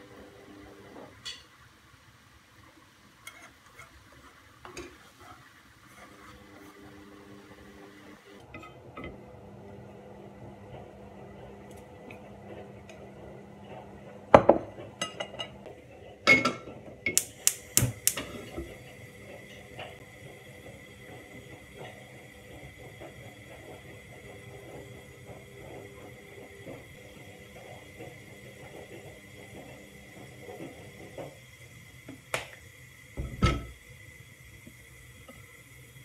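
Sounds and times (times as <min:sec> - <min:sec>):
low kitchen background: 0:00.0 - 0:36.0.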